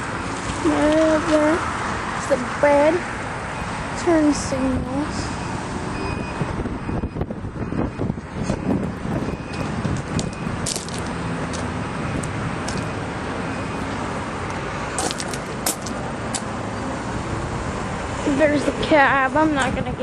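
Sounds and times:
highway traffic roar: 0.0s - 20.0s
trucks passing: 0.0s - 20.0s.

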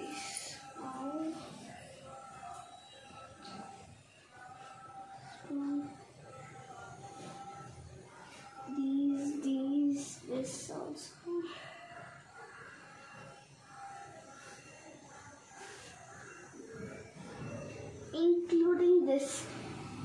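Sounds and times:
girl's voice: 18.2s - 19.4s.

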